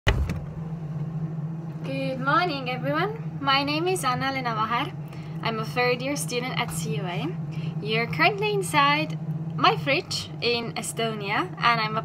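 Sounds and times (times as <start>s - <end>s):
fridge humming: 0.0s - 12.0s.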